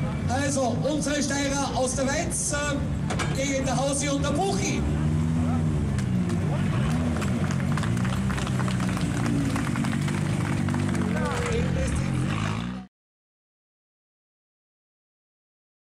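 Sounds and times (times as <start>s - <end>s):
car engine idling with throttle blips: 0.0s - 12.5s
voices: 0.0s - 12.9s
people clapping: 5.9s - 12.5s.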